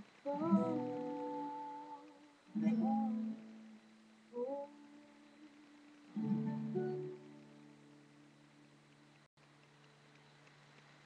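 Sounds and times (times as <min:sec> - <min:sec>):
person humming: 0:00.0 - 0:03.5, 0:04.4 - 0:05.8
acoustic guitar chord: 0:00.0 - 0:09.0.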